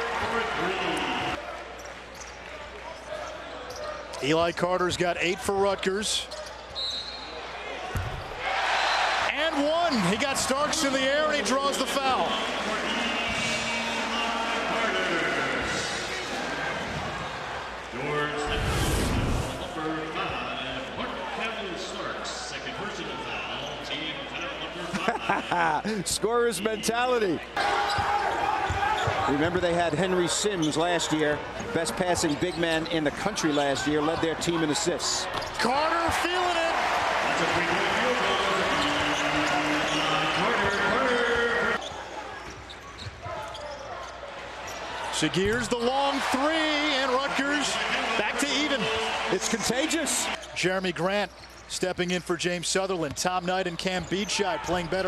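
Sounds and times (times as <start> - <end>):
arena crowd voices: 0.0 - 51.2
swish with low boom: 18.5 - 19.7.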